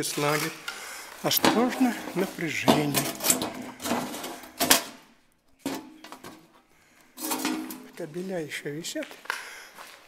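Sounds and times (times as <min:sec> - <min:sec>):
scuffing footsteps: 0:00.0 - 0:03.1, 0:07.3 - 0:10.0
knocks and scrapes on tiled floor: 0:07.2 - 0:08.0.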